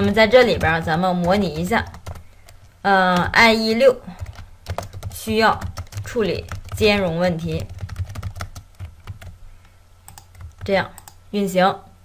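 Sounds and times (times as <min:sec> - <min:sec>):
computer keyboard typing: 0:00.0 - 0:09.4, 0:10.1 - 0:11.2
low steady hum: 0:00.0 - 0:12.0.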